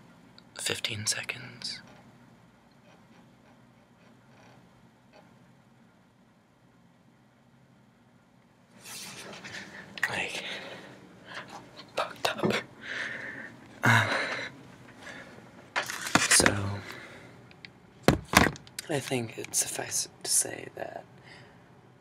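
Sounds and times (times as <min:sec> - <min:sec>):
breathy whispering: 0:08.8 - 0:15.5
camera handling rustling and knocks: 0:15.8 - 0:16.6, 0:18.0 - 0:18.7.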